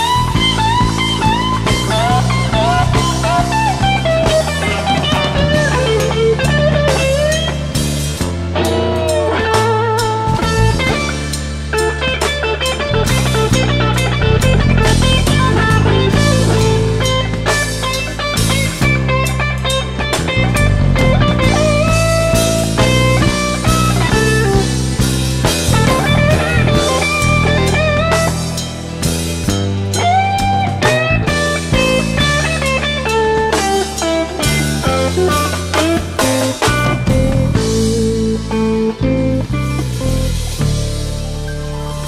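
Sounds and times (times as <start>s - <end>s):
bass: 0.0s - 42.0s
blues lead guitar bending notes: 0.0s - 42.0s
drum kit: 0.0s - 42.0s.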